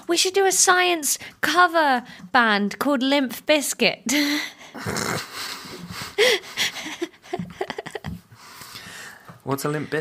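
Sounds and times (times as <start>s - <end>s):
people laughing breathily: 4.7s - 8.4s.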